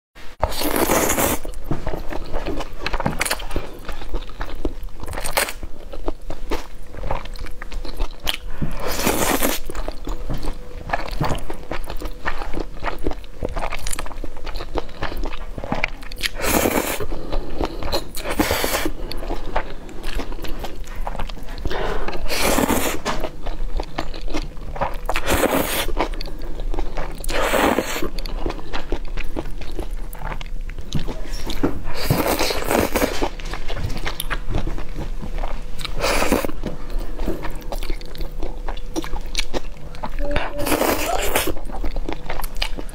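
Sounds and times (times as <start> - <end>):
slurping noodles: 25.2 - 26.0.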